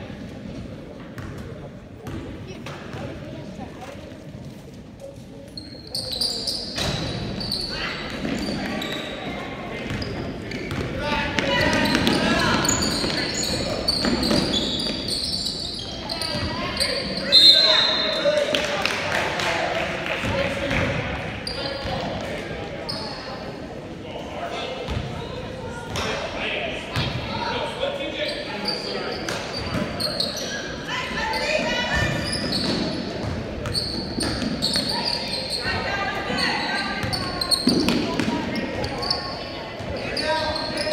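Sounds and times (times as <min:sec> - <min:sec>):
spectators' voices: 0:00.0 - 0:40.9.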